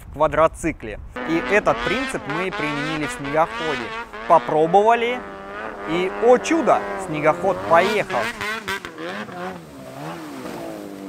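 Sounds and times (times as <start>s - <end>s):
snowmobile engine running hard: 1.2s - 11.0s.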